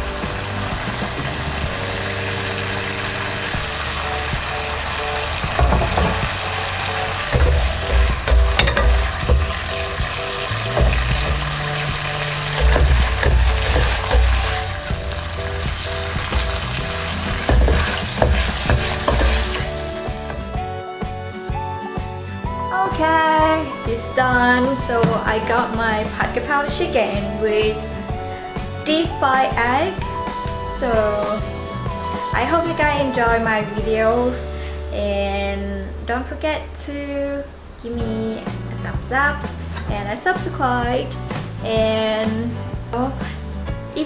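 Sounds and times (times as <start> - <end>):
food sizzling in a pan: 0.0 - 20.4
background music: 0.0 - 44.0
spatula scraping a pan: 5.6 - 20.0.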